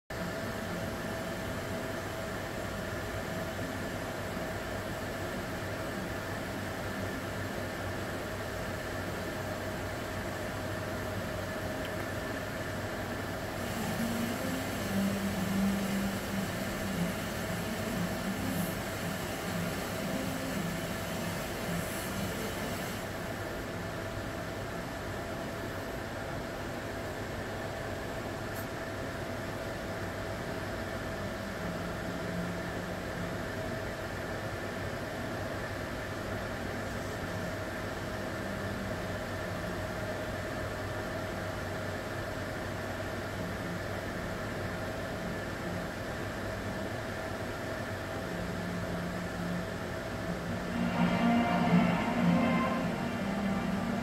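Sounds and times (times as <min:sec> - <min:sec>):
background hum and hiss: 0:00.1 - 0:54.0
low drone: 0:50.3 - 0:54.0.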